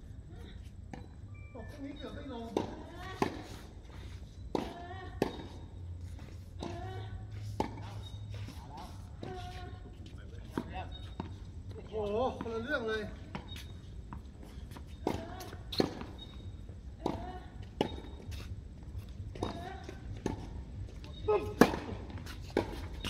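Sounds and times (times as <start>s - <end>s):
tennis balls struck by rackets: 4.5s - 5.7s, 21.2s - 23.0s.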